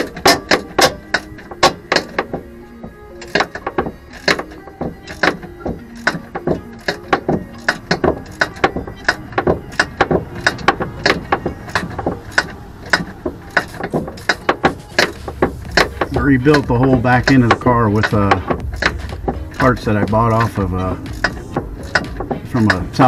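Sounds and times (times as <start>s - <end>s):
hand wrench working a bolt: 0.0s - 23.0s
sharp metallic clicks and knocks: 0.0s - 23.0s.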